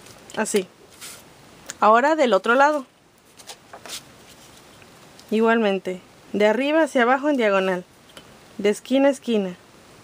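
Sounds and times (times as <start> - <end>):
cardstock rustling and sliding: 2.7 - 4.7.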